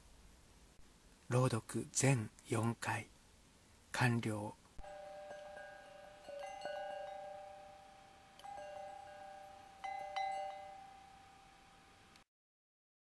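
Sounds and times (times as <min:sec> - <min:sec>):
bell-like chimes ringing: 0:04.8 - 0:12.0.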